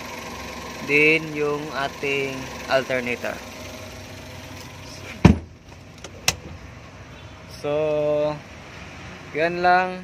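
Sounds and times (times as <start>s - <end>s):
heavy seat thump: 5.1s - 6.6s.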